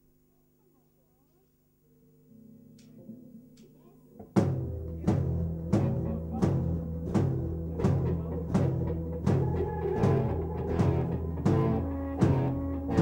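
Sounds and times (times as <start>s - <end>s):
faint low droning: 1.8s - 13.0s
heavy drum hits: 4.4s - 13.0s
live band playing: 4.5s - 13.0s.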